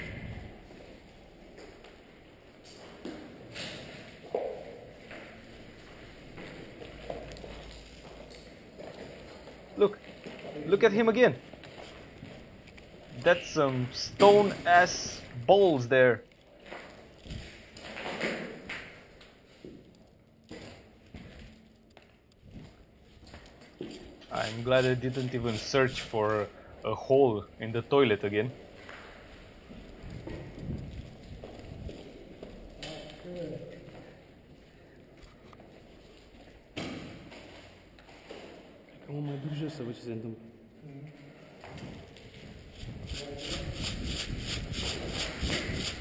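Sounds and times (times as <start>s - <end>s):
footsteps crunching on rubble: 28.6s - 32.8s.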